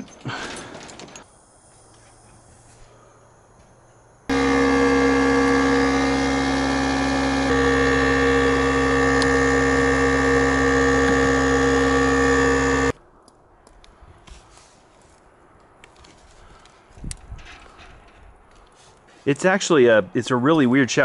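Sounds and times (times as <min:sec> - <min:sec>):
electric air compressor running: 0:04.3 - 0:13.0.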